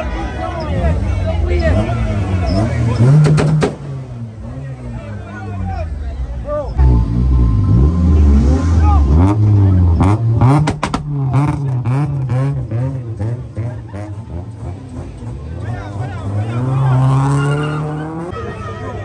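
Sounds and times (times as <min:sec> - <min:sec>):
car engine revving: 0:00.6 - 0:18.6
exhaust pops and cracks: 0:10.6 - 0:11.1.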